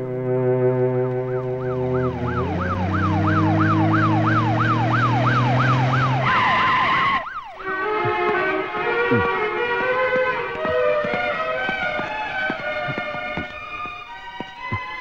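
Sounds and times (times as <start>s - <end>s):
film score chords: 0.0s - 6.8s, 7.6s - 15.0s
police siren wailing: 0.0s - 15.0s.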